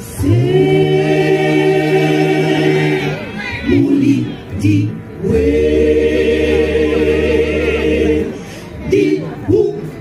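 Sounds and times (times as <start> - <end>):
mixed choir singing in harmony: 0.0 - 9.8.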